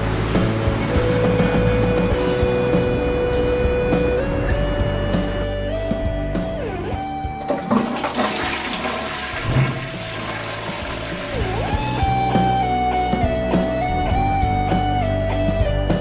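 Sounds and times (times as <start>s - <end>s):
background music with held notes: 0.0s - 16.0s
toilet flushing: 7.3s - 12.3s.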